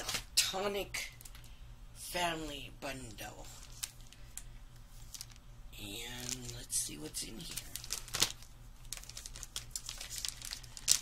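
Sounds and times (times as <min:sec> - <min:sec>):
plastic packaging crinkling: 0:03.1 - 0:11.0.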